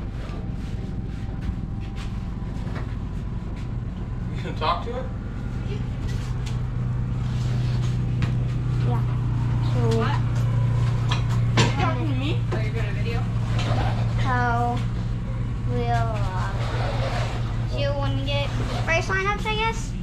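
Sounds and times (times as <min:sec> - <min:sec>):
engine running: 0:00.0 - 0:20.0.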